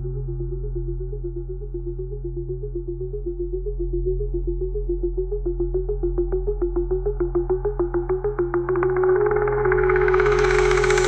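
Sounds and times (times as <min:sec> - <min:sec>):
low synth drone: 0:00.0 - 0:11.0.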